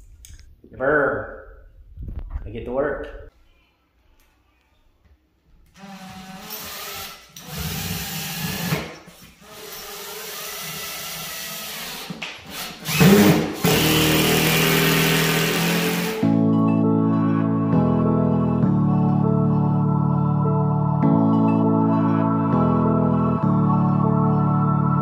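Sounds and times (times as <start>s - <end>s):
cordless drill driving screws: 5.8s - 8.8s, 9.4s - 16.2s
music: 13.7s - 25.0s.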